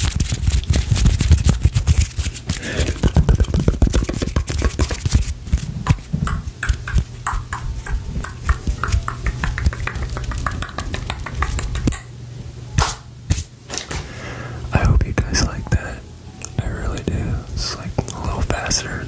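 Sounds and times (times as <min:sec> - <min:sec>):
steady low hum: 0:00.0 - 0:19.0
fingers clicking and tapping: 0:05.9 - 0:12.1.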